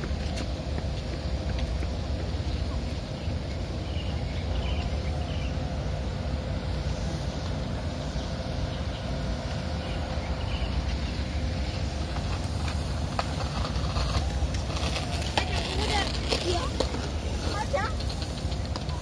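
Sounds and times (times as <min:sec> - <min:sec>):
steady low rumble: 0:00.0 - 0:19.0.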